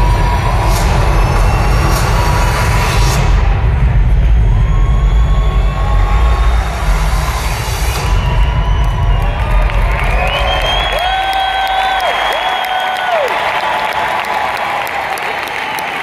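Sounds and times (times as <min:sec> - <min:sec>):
drum hits: 0:00.0 - 0:11.6
dull drone: 0:00.0 - 0:11.8
deep rumbling soundtrack over speakers: 0:00.0 - 0:12.3.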